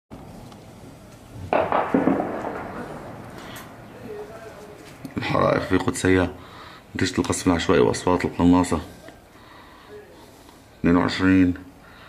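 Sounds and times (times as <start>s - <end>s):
weapon fire bangs: 1.5s - 5.1s.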